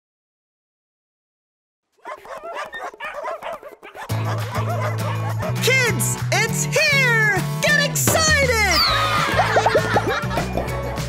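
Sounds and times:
dogs yipping and barking: 2.0s - 5.7s.

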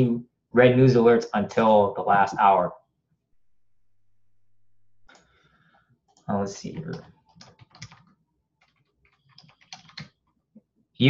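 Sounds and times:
faint typing on keyboard: 6.1s - 10.5s.

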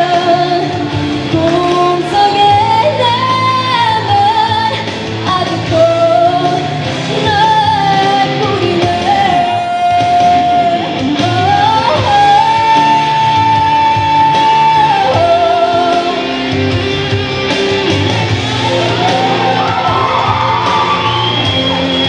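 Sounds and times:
woman singing into a microphone: 0.0s - 16.6s
backing music: 0.0s - 22.0s.

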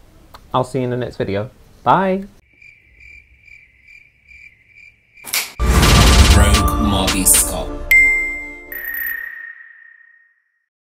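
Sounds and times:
cricket chirping: 2.4s - 5.6s.

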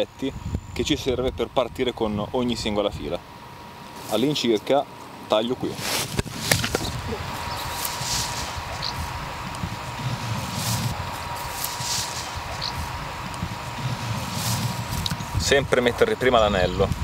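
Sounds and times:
low outdoor rumble: 0.0s - 17.0s
soft rustling: 3.9s - 4.5s, 5.6s - 15.4s
pruning shears snipping hose: 5.7s - 15.4s.

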